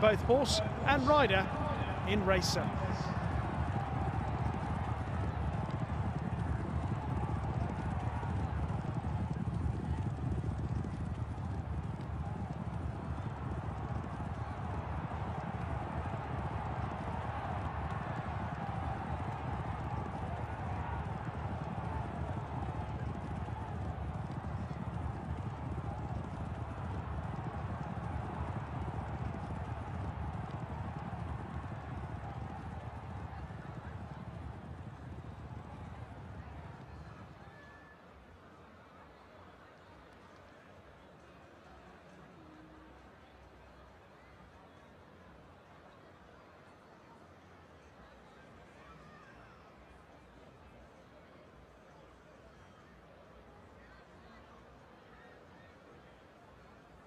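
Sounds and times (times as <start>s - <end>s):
horse hoofbeats on dirt: 3.2s - 36.8s.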